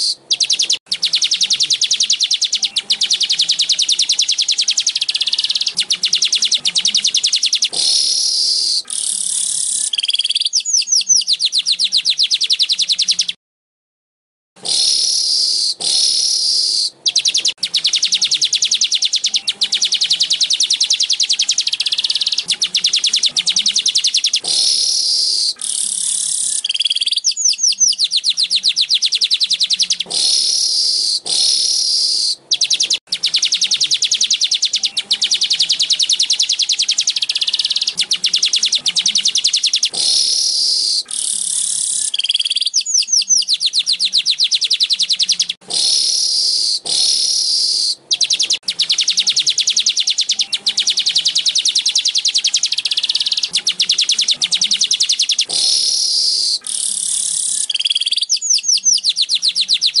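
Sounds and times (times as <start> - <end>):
bird chattering trill: 0.0 - 13.4, 14.6 - 60.0.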